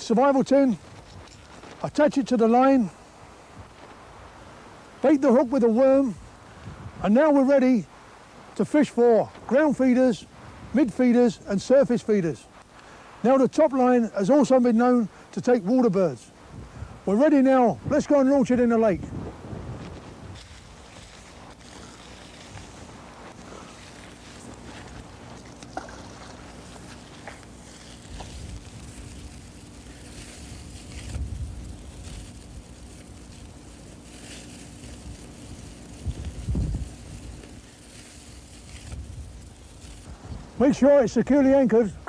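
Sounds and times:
faint steady hum: 0:00.0 - 0:42.0
small clicks and rustles: 0:00.8 - 0:01.8
wind buffeting microphone: 0:06.2 - 0:07.0, 0:16.4 - 0:17.1, 0:18.9 - 0:23.5, 0:24.6 - 0:32.8, 0:35.0 - 0:37.6, 0:38.6 - 0:40.7.

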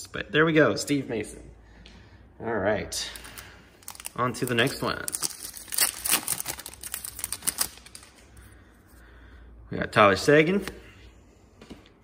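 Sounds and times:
foil wrapper tearing and crinkling: 0:03.8 - 0:08.2.

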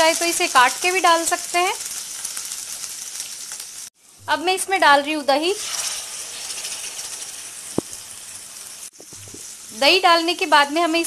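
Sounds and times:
oil sizzling and crackling: 0:00.0 - 0:11.0
curd pouring into pan: 0:05.6 - 0:08.1.

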